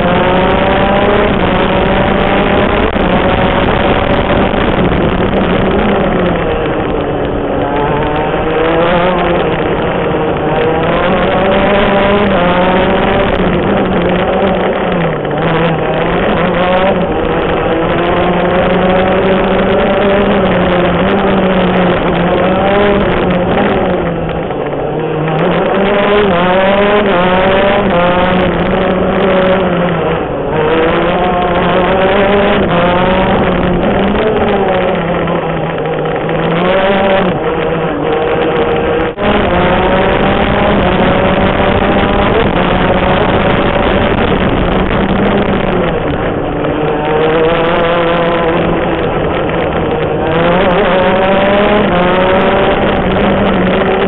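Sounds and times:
kart engine revving through gears: 0.0 - 54.0.

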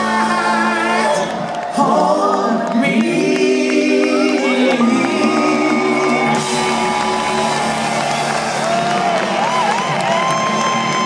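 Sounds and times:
crowd cheering and whooping: 0.0 - 2.8, 3.8 - 11.0
rock band holding a chord: 4.7 - 11.0.

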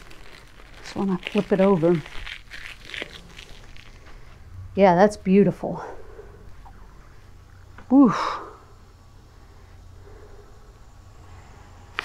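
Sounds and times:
faint crinkling and rustling: 0.0 - 4.5.

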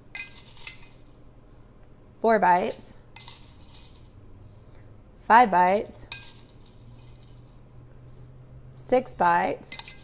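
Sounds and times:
metal spoon clinking on glass cup: 0.1 - 1.0, 6.1 - 7.4, 9.2 - 10.0.

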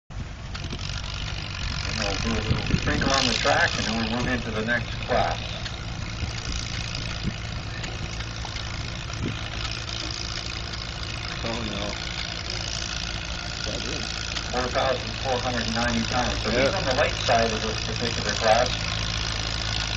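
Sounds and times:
tractor engine running: 0.1 - 19.9.

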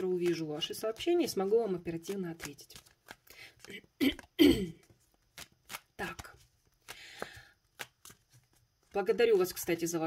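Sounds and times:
cards being shuffled: 0.0 - 10.0
woman clearing her throat: 4.0 - 4.8.

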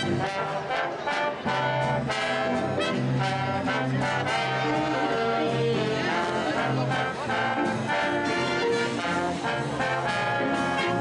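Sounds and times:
big band swing music: 0.0 - 11.0
trombones and trumpets: 0.0 - 11.0.

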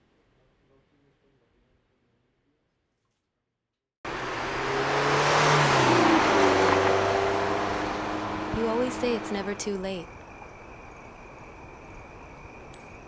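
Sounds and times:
car passing by: 4.1 - 9.7.

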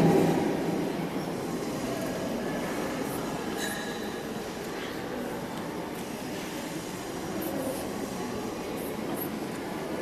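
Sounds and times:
hall room rumble and hiss: 0.0 - 10.0.

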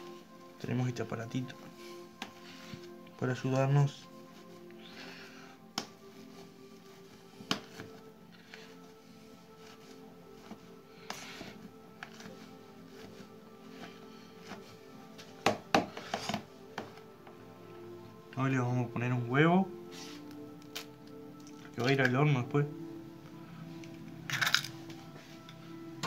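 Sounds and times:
background music steady tones: 0.0 - 26.0.

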